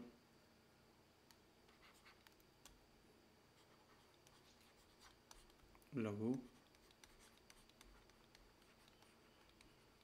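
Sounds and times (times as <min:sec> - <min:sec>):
stylus scratching on pen tablet: 0:01.7 - 0:02.3, 0:03.6 - 0:05.7, 0:06.3 - 0:10.0.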